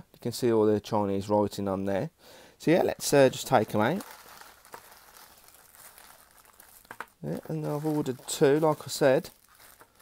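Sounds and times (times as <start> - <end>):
plastic bags rustling: 2.9 - 10.0.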